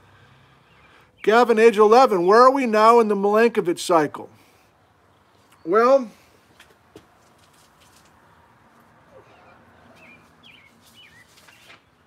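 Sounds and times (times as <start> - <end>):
small bird chirping: 9.1 - 12.0.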